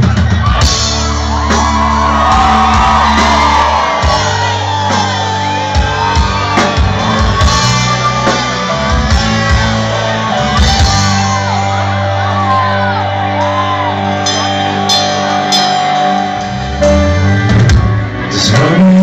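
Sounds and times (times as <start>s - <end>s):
drum kit: 0.0s - 19.0s
live band music: 0.0s - 19.0s
steady low bass line: 0.0s - 19.0s
voices shouting and whooping: 0.3s - 16.5s.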